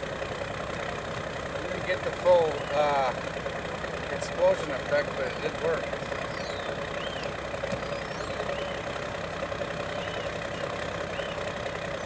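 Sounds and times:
engine-like hum: 0.0s - 12.0s.

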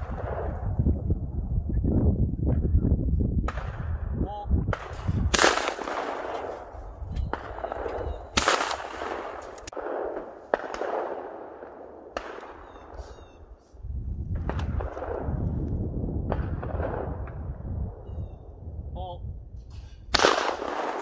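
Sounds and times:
shotgun shots echoing: 4.7s - 13.4s, 20.1s - 21.0s.

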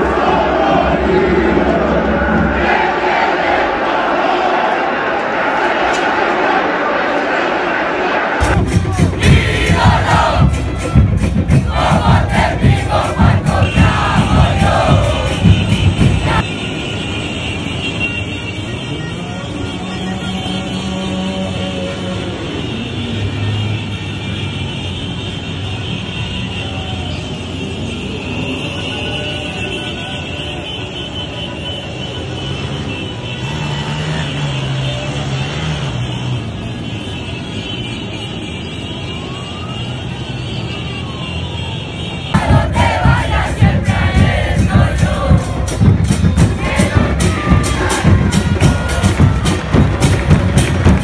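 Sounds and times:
crowd shouting: 0.0s - 16.5s, 42.3s - 51.0s
music with drums: 8.4s - 16.4s, 42.4s - 51.0s
motorcycle and car engines: 32.7s - 36.7s.

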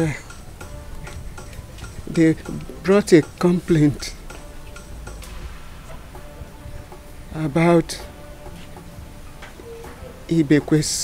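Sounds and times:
man speaking: 0.0s - 4.6s, 6.0s - 9.1s, 10.2s - 11.0s
quiet film music: 0.0s - 11.0s
soft ticking beat: 0.0s - 11.0s.

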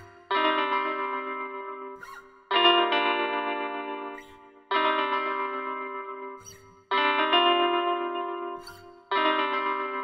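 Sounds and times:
ringing guitar chords: 0.0s - 10.0s.

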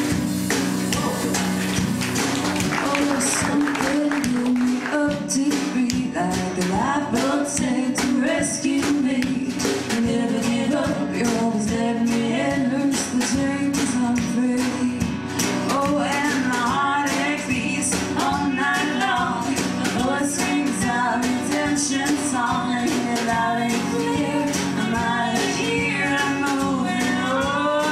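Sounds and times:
country band playing: 0.0s - 27.9s
strummed acoustic guitar: 0.0s - 27.9s
person singing: 0.9s - 27.9s.

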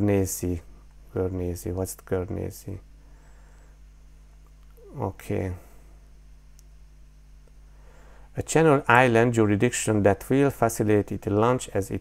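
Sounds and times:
person speaking: 0.0s - 2.9s, 4.7s - 5.8s, 8.4s - 12.0s
low electrical hum: 0.0s - 12.0s.

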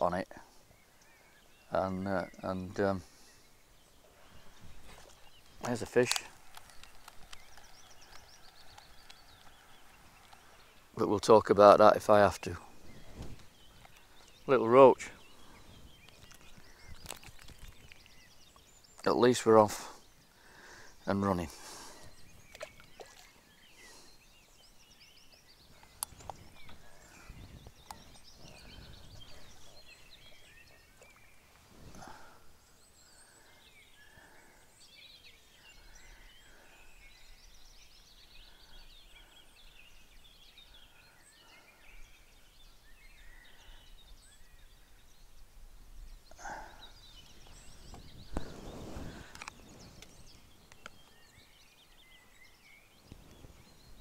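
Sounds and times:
small birds singing: 0.0s - 54.0s
wind gusts on microphone: 12.7s - 14.0s, 25.7s - 30.6s, 47.0s - 50.8s.

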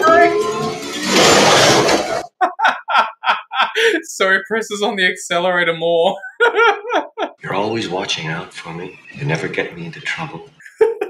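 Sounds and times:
man laughing in breathy bursts: 2.3s - 4.1s, 6.2s - 7.4s, 10.6s - 11.0s.

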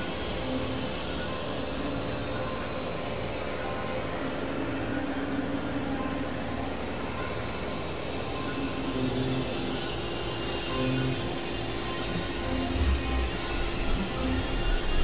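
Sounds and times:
synthesizer noise drone: 0.0s - 15.0s
held low tones: 12.1s - 15.0s.

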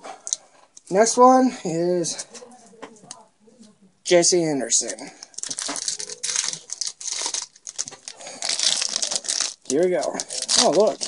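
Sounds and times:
foil wrapper crinkling: 4.8s - 11.0s.

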